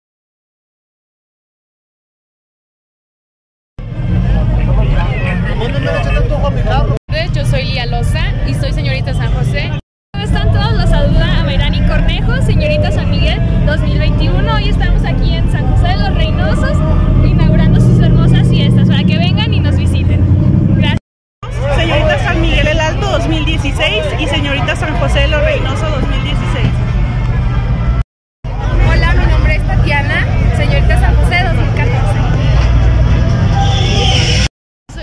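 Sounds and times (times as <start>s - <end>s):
people's voices: 3.8s - 35.0s
steady low rumble: 3.8s - 35.0s.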